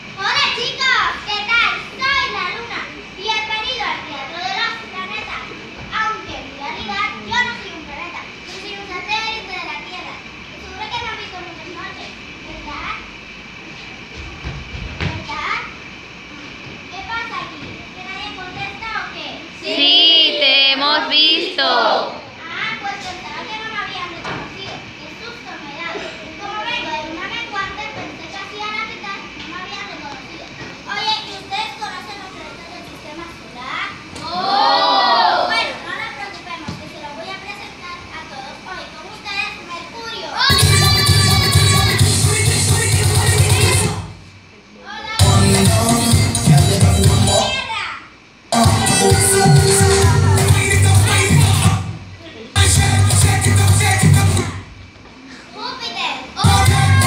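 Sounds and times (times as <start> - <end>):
children chattering and calling out: 0.0 - 14.1, 15.2 - 42.4, 43.3 - 45.6, 47.3 - 53.6, 54.2 - 57.0
children calling out: 34.1 - 36.0, 55.3 - 57.0.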